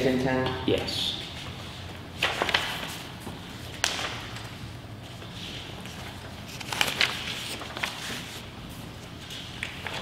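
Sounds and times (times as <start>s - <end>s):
paper sheets handled: 1.2s - 10.0s.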